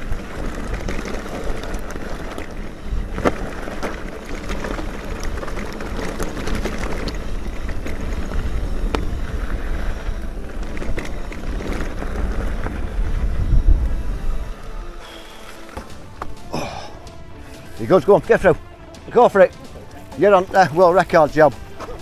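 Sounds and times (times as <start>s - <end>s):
bike rattling over stones: 0.0s - 22.0s
bike tyres rolling on rough trail: 0.0s - 22.0s
wind buffeting microphone: 0.0s - 22.0s.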